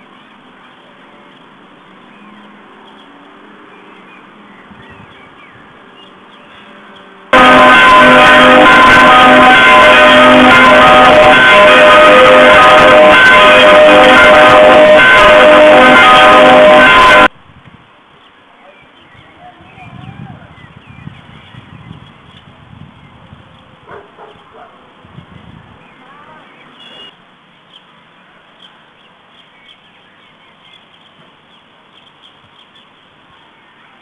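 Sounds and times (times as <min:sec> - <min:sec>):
church bells ringing loudly: 0:07.4 - 0:17.3.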